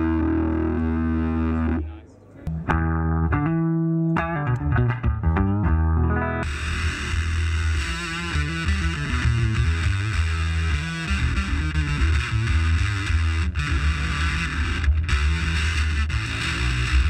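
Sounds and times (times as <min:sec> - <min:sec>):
fuzzed electric guitar riff: 0:00.0 - 0:17.0.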